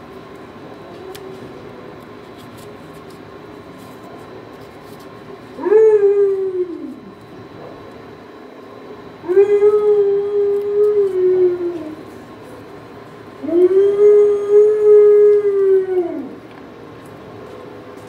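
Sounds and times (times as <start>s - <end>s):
dog howling: 5.6s - 7.2s, 9.2s - 12.1s, 13.4s - 16.5s.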